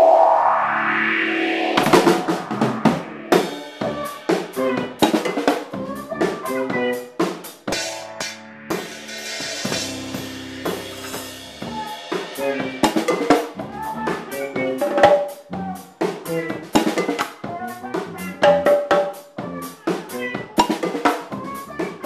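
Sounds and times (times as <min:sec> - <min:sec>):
sustained pitched notes: 0:00.0 - 0:05.0
drum kit playing: 0:01.6 - 0:22.0.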